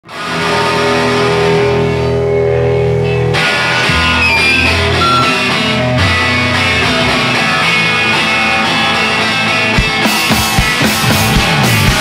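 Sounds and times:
bass guitar: 0:00.0 - 0:12.0
electric guitar chords: 0:00.0 - 0:12.0
rock band playing live: 0:00.0 - 0:12.0.

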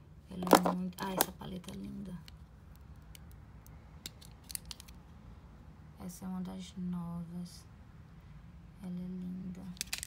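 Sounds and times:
plastic compacts clicking together: 0:00.4 - 0:01.4, 0:02.2 - 0:05.0, 0:09.8 - 0:10.0.

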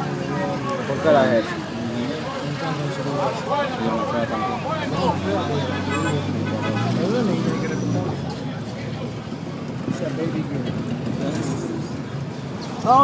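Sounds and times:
men talking: 0:00.0 - 0:13.0
road noise: 0:00.0 - 0:13.0.

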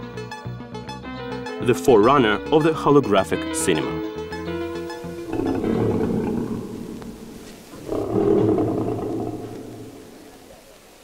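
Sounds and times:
background music chord: 0:00.0 - 0:07.5
lion roaring: 0:05.2 - 0:10.4.

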